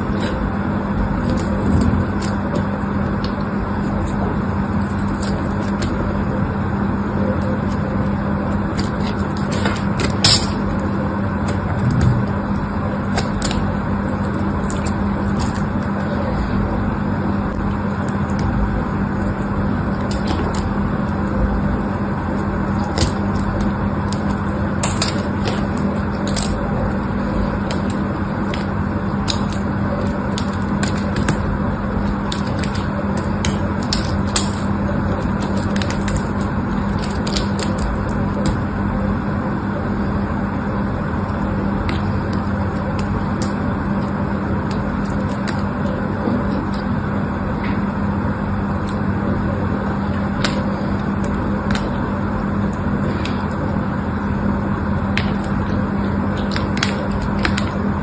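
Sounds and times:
blade shaving soap crackles: 0:00.0 - 0:58.0
low hum: 0:00.0 - 0:58.0.

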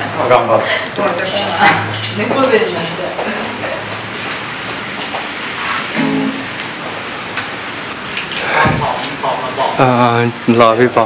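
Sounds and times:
acoustic guitar strumming: 0:05.9 - 0:06.6.

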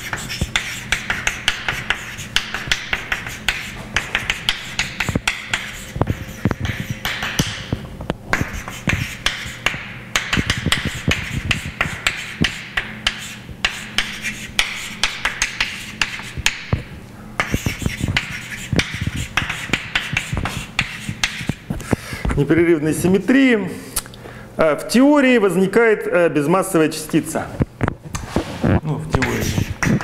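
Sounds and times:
chalk tapping and scratching: 0:00.0 - 0:22.0, 0:29.2 - 0:30.0.

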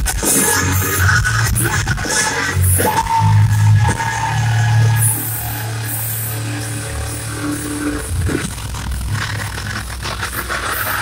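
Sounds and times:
live heavy metal band: 0:00.0 - 0:11.0.

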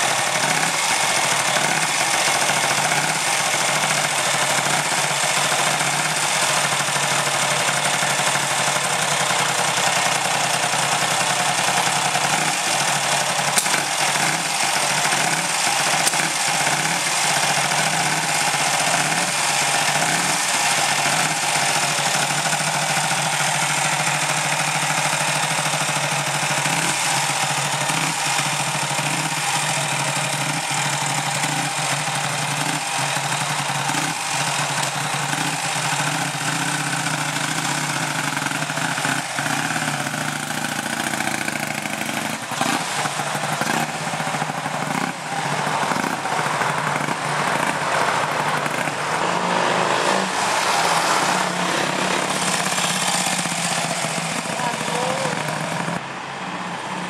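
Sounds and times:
motorcycle engine idling: 0:00.0 - 0:49.5, 0:50.2 - 0:56.3
motorcycle pulling away: 0:00.0 - 0:56.1.

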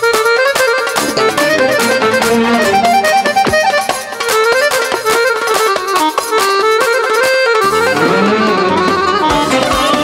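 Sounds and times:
accordion-like lead melody: 0:00.0 - 0:10.0
bass: 0:07.6 - 0:10.0.

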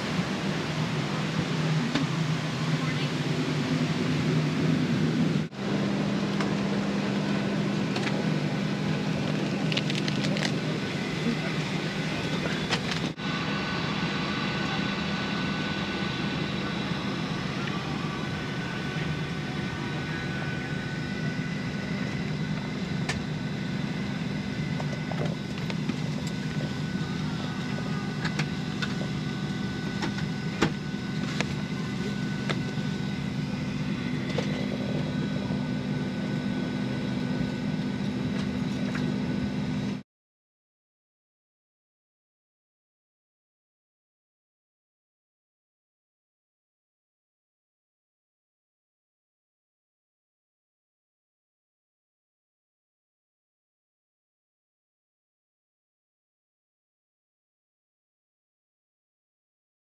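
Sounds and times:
aircraft cabin ventilation hum: 0:00.0 - 0:40.0
faint steady whining tones: 0:00.0 - 0:40.0.

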